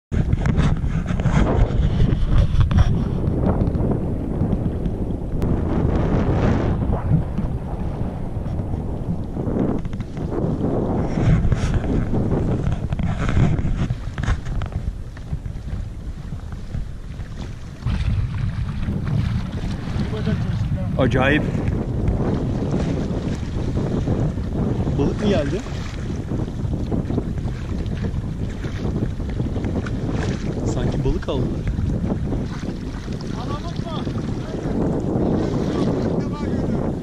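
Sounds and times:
water splashing against hull: 0.1 - 37.0
wind buffeting microphone: 0.1 - 37.0.

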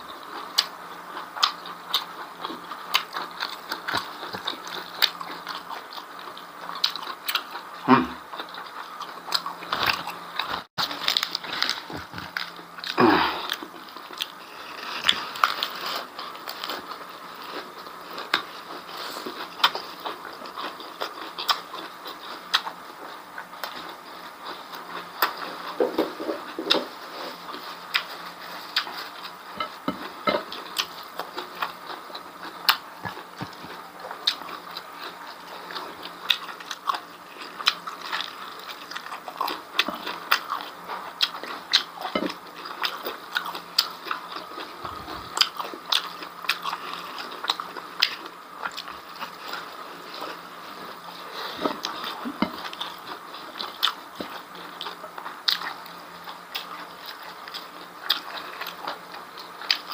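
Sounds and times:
person chewing wetly: 0.1 - 59.9.

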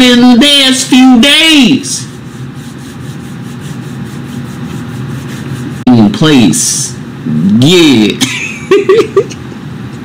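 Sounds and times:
palms rubbing together: 1.4 - 5.9.

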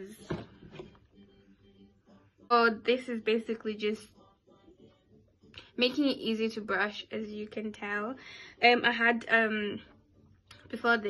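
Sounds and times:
woman talking: 2.5 - 4.1, 5.6 - 9.9, 10.6 - 11.0.

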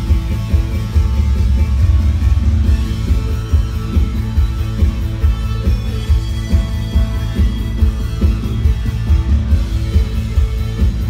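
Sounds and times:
heavy pulsing bass: 0.0 - 11.0
loud rock music through a pa: 0.0 - 11.0.

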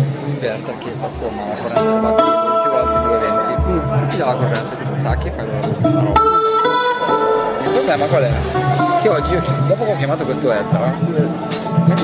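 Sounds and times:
dull low thumps: 0.0 - 12.0
guitar picking: 0.0 - 12.0.

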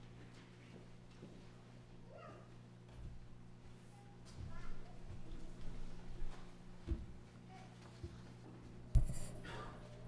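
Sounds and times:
steady low hum: 8.5 - 10.0.

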